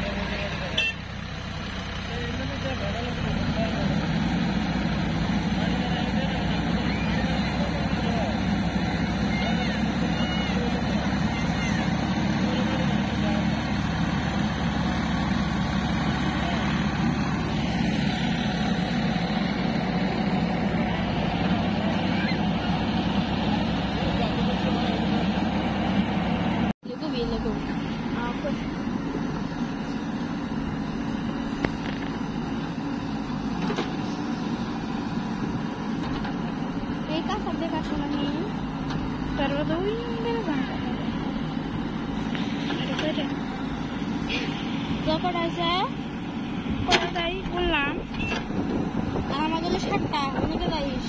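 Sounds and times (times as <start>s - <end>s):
diesel engines running: 0.0s - 51.0s
voice-like calls: 6.7s - 8.1s, 8.8s - 12.3s, 21.9s - 22.7s
backhoe digging mud: 31.3s - 45.1s.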